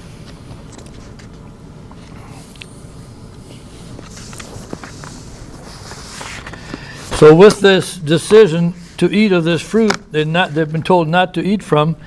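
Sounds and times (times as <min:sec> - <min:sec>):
low room hum: 0:00.0 - 0:12.0
paper rustling: 0:04.0 - 0:07.6.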